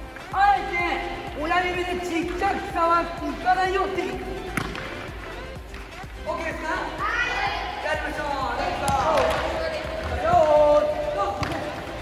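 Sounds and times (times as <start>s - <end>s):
balls bouncing on indoor court: 0.0s - 6.5s, 8.0s - 12.0s
coach and children talking: 0.2s - 12.0s.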